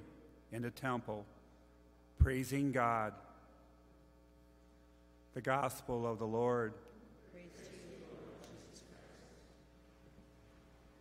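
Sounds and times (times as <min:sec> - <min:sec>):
low steady hum: 0:00.0 - 0:11.0
murmur of congregation speaking: 0:05.4 - 0:10.4.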